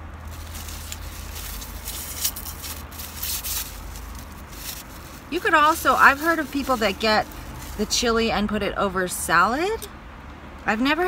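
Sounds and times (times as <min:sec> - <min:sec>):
food packaging crinkling: 0:00.2 - 0:08.1.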